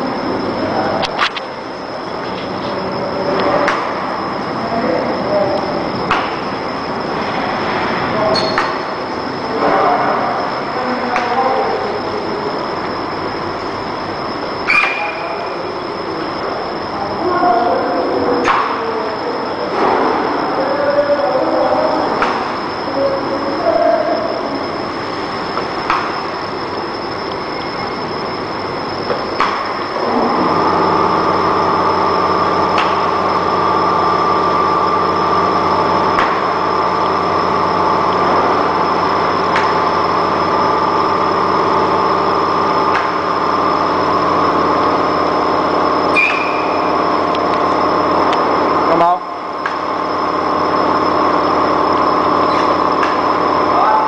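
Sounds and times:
laminator running: 0.0s - 54.0s
motor hum with pitched drone: 0.0s - 54.0s.

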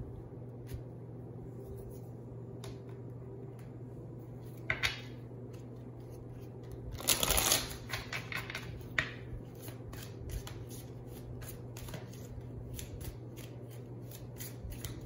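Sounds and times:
cards being shuffled by hand: 5.4s - 15.0s.

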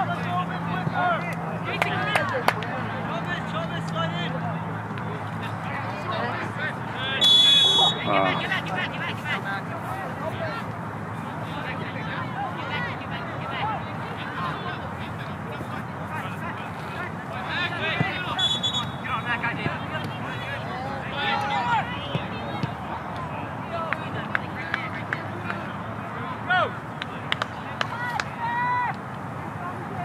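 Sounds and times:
crowd hubbub: 0.0s - 30.0s
distant shouts and calls: 6.9s - 8.6s, 17.0s - 30.0s.

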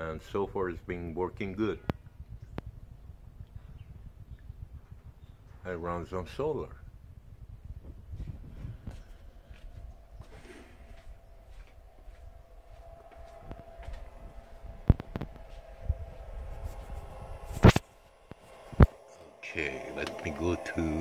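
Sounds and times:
footsteps indoors: 8.2s - 15.9s.

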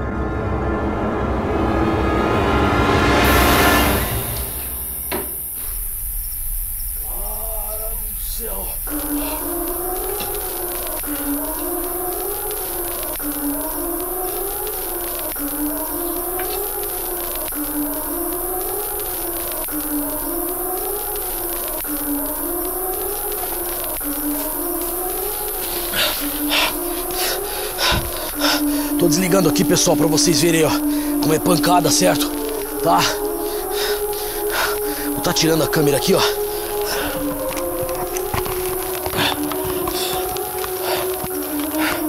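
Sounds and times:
siren-like wailing tone: 7.0s - 42.0s.

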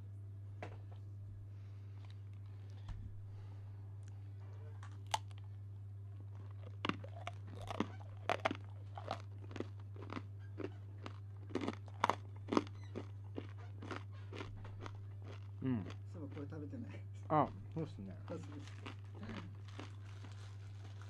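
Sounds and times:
steady low hum: 0.0s - 21.0s
person chewing crunchy snack: 4.8s - 5.5s, 6.1s - 16.5s, 18.3s - 21.0s.

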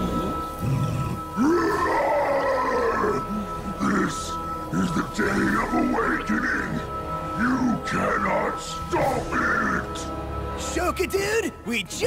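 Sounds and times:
background music: 0.0s - 12.0s
monster screaming: 0.6s - 3.3s.

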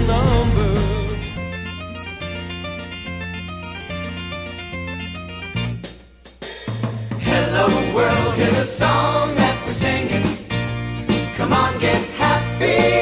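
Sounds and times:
held bass notes: 0.0s - 6.0s, 7.2s - 13.0s
repeated keyboard notes: 0.1s - 6.3s, 7.3s - 13.0s.

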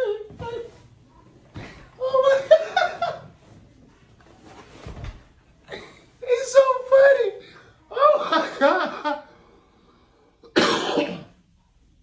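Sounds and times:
man coughing: 10.5s - 11.4s.

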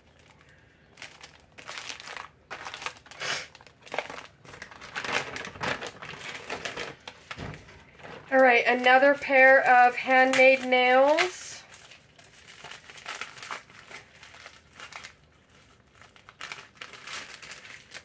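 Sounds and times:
packaging crinkling and rustling: 0.0s - 18.0s.

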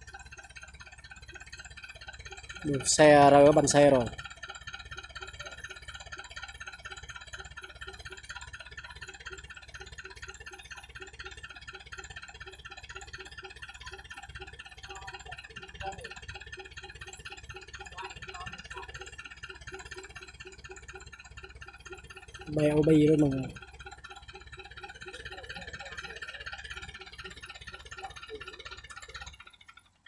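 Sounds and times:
engine idling: 0.0s - 30.0s.

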